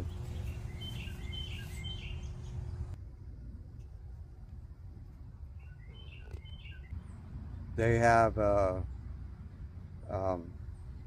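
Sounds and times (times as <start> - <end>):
small bird chirping: 0.0 - 3.0, 5.6 - 7.2
faint steady hum: 0.0 - 11.0.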